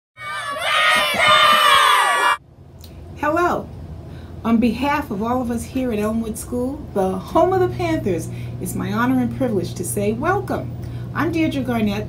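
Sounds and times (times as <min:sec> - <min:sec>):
children shouting and cheering: 0:00.2 - 0:02.4.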